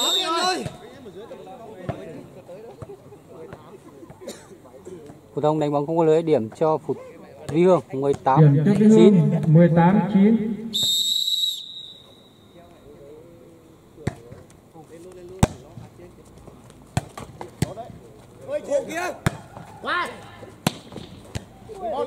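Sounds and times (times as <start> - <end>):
referee's whistle blast: 0.0 - 0.8, 10.6 - 12.6
players shouting: 0.0 - 1.0.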